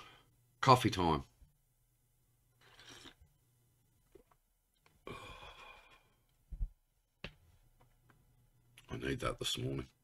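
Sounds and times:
man sighing: 0:05.0 - 0:06.2.

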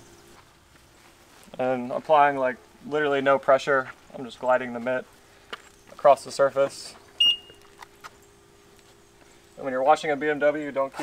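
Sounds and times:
car electronic beep: 0:07.2 - 0:07.6.

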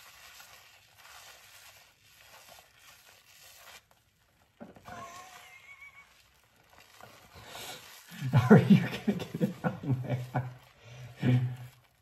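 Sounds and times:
wet squishing of shampoo lather: 0:00.0 - 0:12.0.

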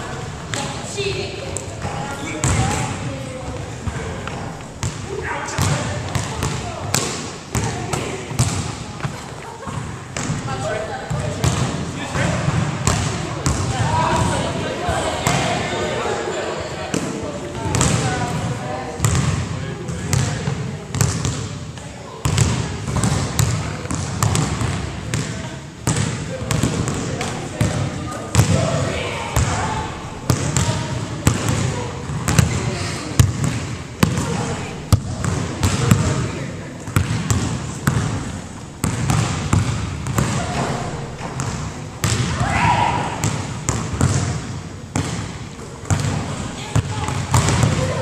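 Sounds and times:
background chatter: 0:00.0 - 0:48.0
basketballs bouncing on hardwood: 0:01.8 - 0:02.8, 0:05.6 - 0:10.4, 0:20.1 - 0:21.5, 0:22.2 - 0:28.6, 0:30.3 - 0:32.6, 0:33.2 - 0:36.2, 0:36.9 - 0:42.4, 0:43.2 - 0:47.9.

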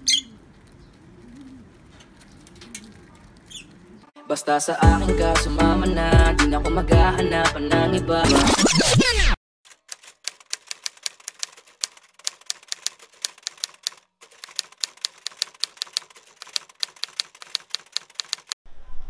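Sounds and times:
hip hop intro music: 0:04.2 - 0:09.4
typewriter key clicks: 0:09.7 - 0:18.6.

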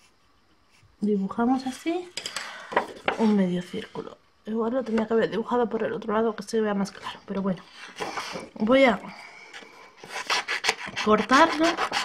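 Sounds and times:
scissors snipping paper: 0:10.1 - 0:12.0.

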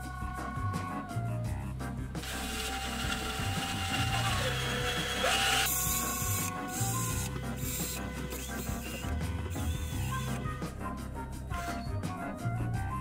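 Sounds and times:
power drill motor: 0:02.2 - 0:10.5.

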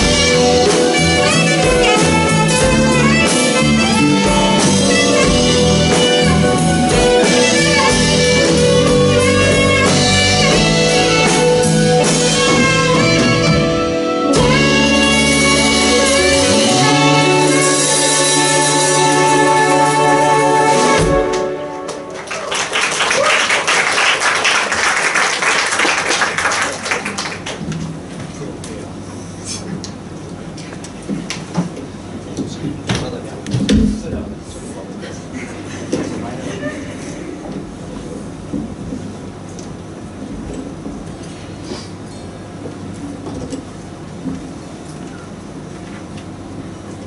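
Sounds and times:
live band playing: 0:00.0 - 0:26.5
audience applauding: 0:21.3 - 0:27.7.

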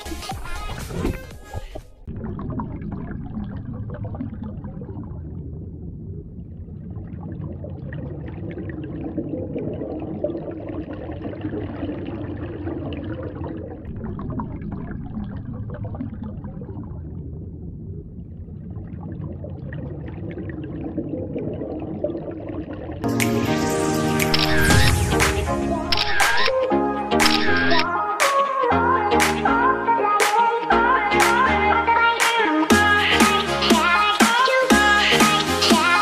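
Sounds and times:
faint crackling and gurgles: 0:00.4 - 0:23.1
muffled underwater water rush: 0:01.9 - 0:23.1.

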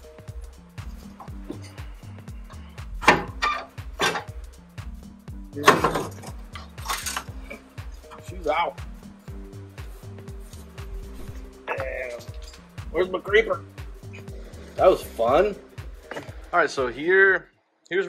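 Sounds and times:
background music with bass line: 0:00.0 - 0:17.4
metal clanks and knocks: 0:03.0 - 0:04.4, 0:05.6 - 0:07.3.

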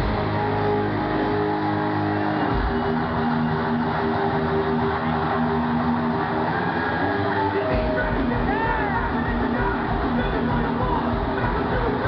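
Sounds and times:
electric guitars sustained notes: 0:00.0 - 0:12.0.

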